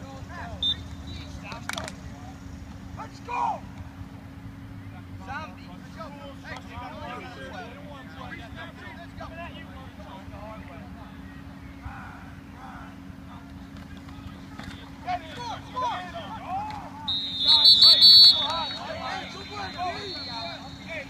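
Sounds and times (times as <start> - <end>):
referee's whistle: 0.6 - 1.4, 17.0 - 21.0
players and onlookers shouting: 14.0 - 21.0.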